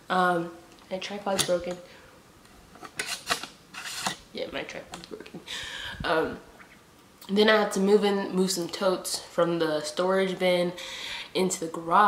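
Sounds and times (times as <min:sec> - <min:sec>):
scratchy camera handling noise: 0:02.8 - 0:04.2.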